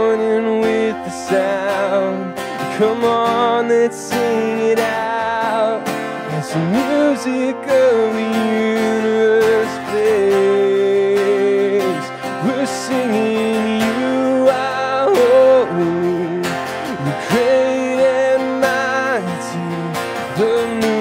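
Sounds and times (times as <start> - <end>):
acoustic guitar strumming: 0.0 - 21.0
man singing a worship song: 0.0 - 21.0.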